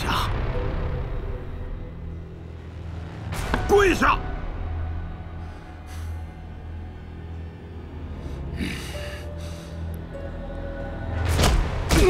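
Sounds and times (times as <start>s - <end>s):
tense dramatic score: 0.0s - 12.0s.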